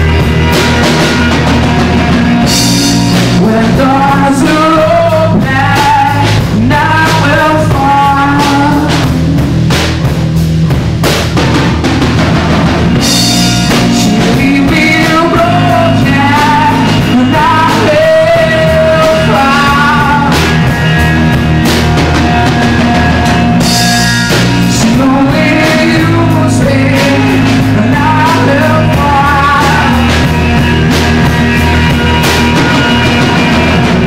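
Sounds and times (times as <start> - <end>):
drum kit beat: 0.0 - 34.0
rock band playing: 0.0 - 34.0
person singing: 1.0 - 9.5, 13.6 - 34.0.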